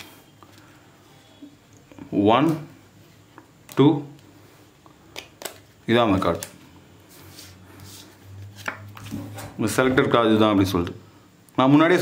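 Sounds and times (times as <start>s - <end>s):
playing cards sliding: 7.1s - 9.3s.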